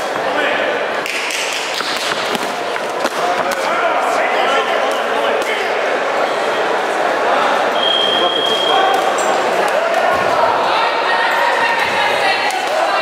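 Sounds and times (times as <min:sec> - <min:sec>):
many voices shouting: 0:08.7 - 0:13.0.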